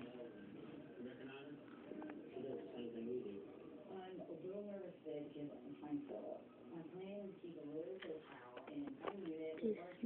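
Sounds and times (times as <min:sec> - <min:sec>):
faint muffled voices talking: 0:00.0 - 0:10.0.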